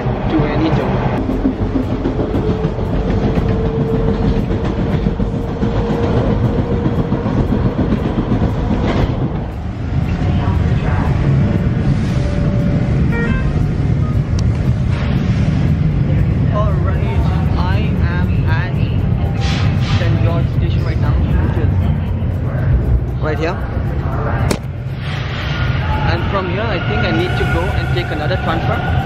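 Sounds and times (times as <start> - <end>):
subway train rumbling: 0.0 - 29.0
people talking: 0.2 - 0.9, 10.0 - 11.7, 16.5 - 24.6, 26.0 - 29.0.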